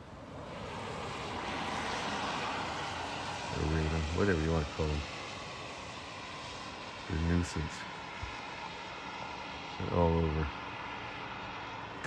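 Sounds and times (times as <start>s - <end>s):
vehicle rushing past: 0.0s - 12.0s
man talking: 3.5s - 5.0s, 7.1s - 7.8s, 9.8s - 10.5s.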